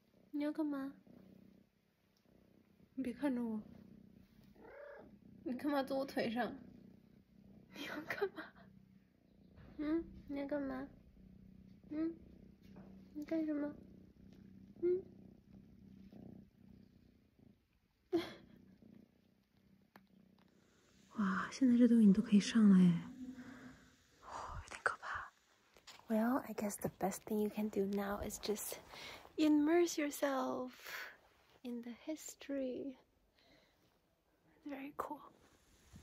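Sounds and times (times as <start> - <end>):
kitten purring: 0.0 - 36.0.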